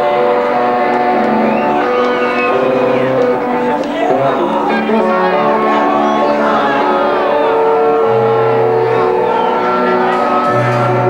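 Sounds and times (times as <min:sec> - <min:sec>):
bass guitar sustained notes: 0:00.0 - 0:11.0
distorted electric guitars: 0:00.0 - 0:11.0.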